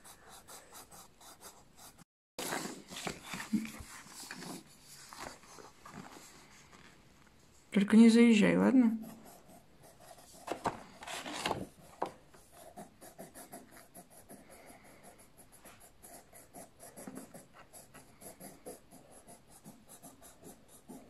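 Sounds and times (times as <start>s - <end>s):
pencil scratching on paper: 0.0s - 6.8s, 8.9s - 21.0s
paper rustle: 2.4s - 7.0s, 10.3s - 12.1s.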